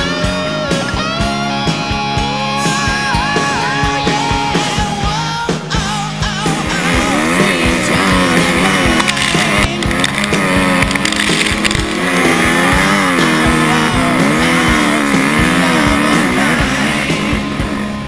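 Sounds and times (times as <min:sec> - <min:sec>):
dirt bike engine revving: 0:00.0 - 0:18.0
rock music: 0:00.0 - 0:18.0.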